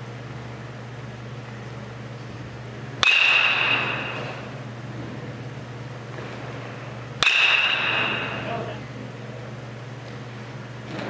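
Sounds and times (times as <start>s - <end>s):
metal bat hitting baseball: 3.0s - 4.6s, 7.2s - 8.8s.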